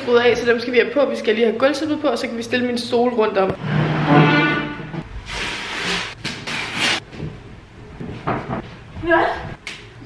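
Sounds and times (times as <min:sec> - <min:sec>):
rug scraping on wooden floor: 0:03.6 - 0:07.0.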